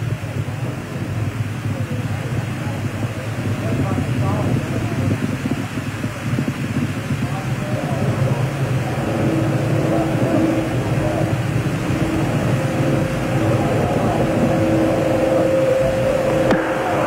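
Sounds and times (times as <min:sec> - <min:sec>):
faint steady hum tones: 0:00.0 - 0:17.0
steady rushing noise: 0:00.0 - 0:17.0.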